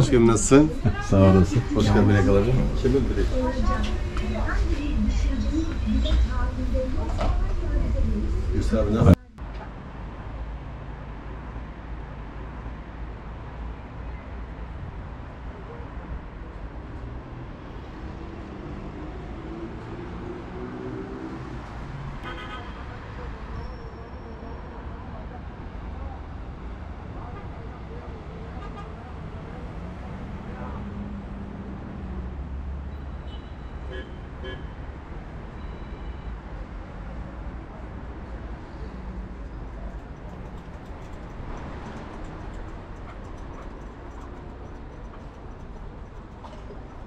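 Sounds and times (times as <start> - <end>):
people talking: 0.0 - 9.4
steady low rumble: 0.0 - 9.5
rumble of road traffic: 0.0 - 47.0
vehicle horn toot: 22.2 - 22.8, 33.2 - 34.8.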